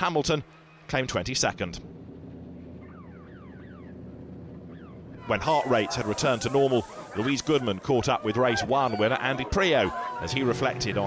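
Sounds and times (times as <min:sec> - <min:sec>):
low engine hum: 0:00.0 - 0:11.0.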